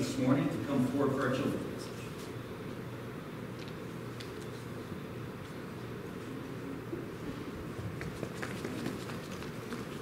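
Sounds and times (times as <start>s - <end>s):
low room hum: 0.0s - 10.0s
quick footsteps: 7.8s - 10.0s.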